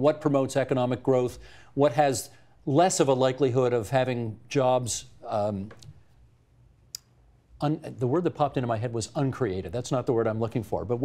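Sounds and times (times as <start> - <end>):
man speaking: 0.0 - 6.0, 7.6 - 11.0.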